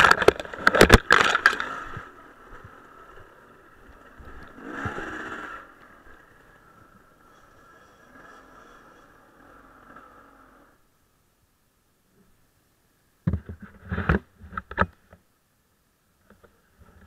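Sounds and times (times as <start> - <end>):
dirt bike engine revving: 4.1 - 10.9.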